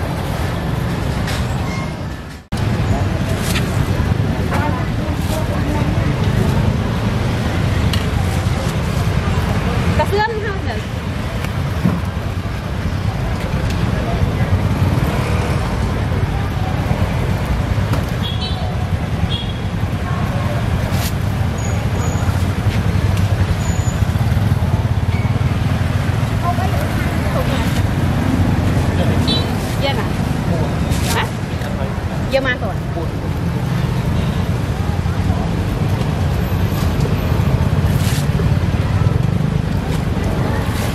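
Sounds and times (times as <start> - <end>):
motorbike and road traffic: 0.0 - 40.9
people talking: 2.6 - 11.4, 18.6 - 23.4, 26.2 - 40.9.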